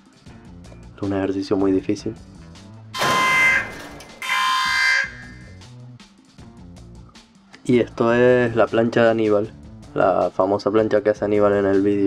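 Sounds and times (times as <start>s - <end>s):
quiet background music: 0.0s - 3.0s, 3.6s - 12.0s
loud buzzer blasts: 3.0s - 5.6s.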